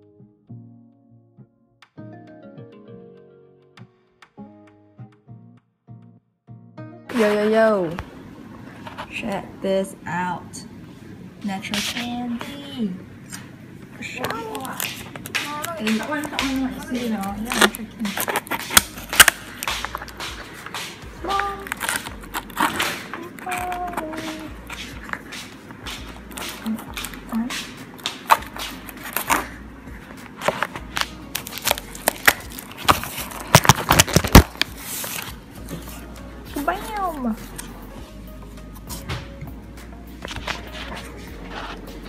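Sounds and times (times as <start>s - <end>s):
cardboard crackling and rustling: 14.2s - 37.8s, 40.3s - 42.0s
packing tape pulled off: 16.5s - 20.8s, 21.4s - 25.3s, 30.3s - 36.0s.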